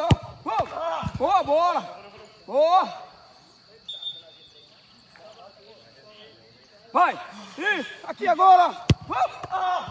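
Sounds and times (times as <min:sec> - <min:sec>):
faint distant voices: 0:00.0 - 0:09.9.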